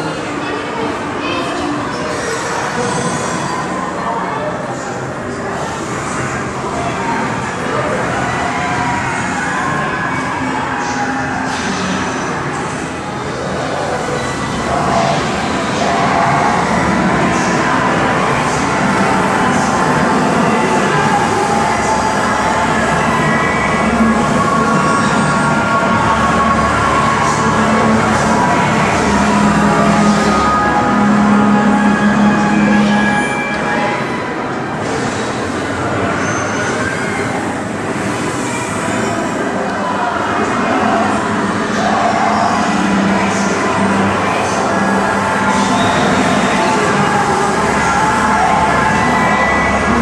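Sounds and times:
dense background drone: 0.0s - 36.1s, 36.7s - 50.0s
voices: 0.0s - 50.0s.

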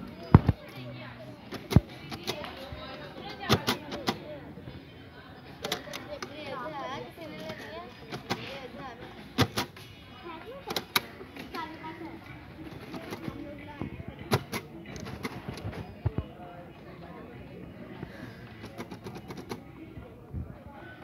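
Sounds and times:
background chatter of voices: 0.0s - 21.0s.

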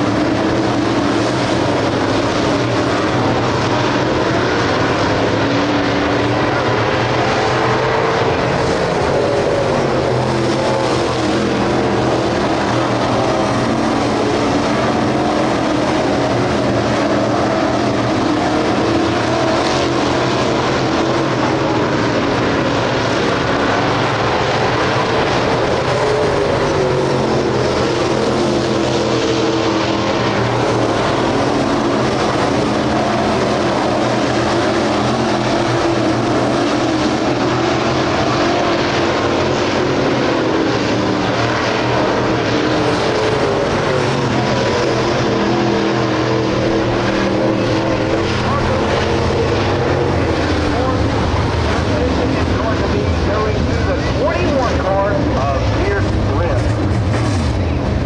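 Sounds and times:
race car engines at speed: 0.0s - 58.0s.

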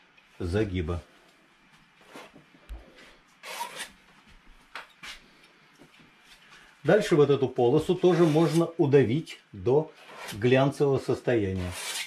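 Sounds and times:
palette knife scraping paint: 8.0s - 8.7s, 10.0s - 10.5s, 11.5s - 12.0s.

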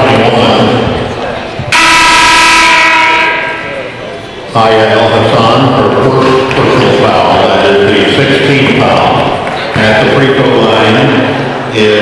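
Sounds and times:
scoreboard horn blare: 1.7s - 3.8s.

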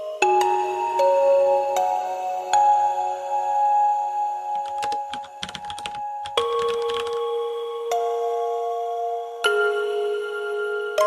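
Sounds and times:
background music with held notes: 0.0s - 11.0s
keyboard typing clicks: 4.6s - 7.3s.

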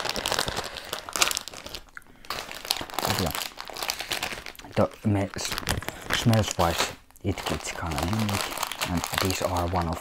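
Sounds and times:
plastic candy bag crinkling: 0.0s - 10.0s.

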